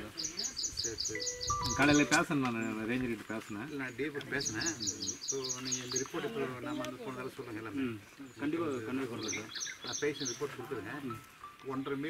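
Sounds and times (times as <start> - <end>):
man talking: 1.2 - 12.0.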